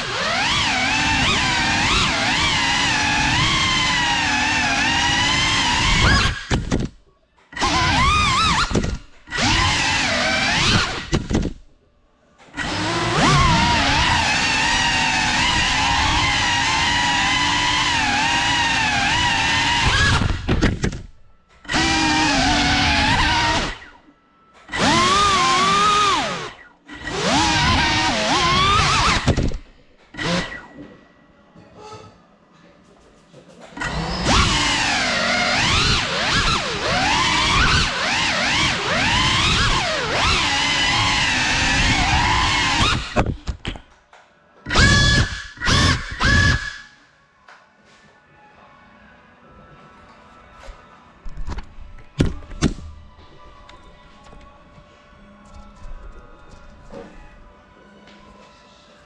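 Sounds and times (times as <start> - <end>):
drone motors whining: 0.0 - 6.9, 7.6 - 11.6, 12.6 - 24.1, 24.7 - 30.8, 33.8 - 43.6.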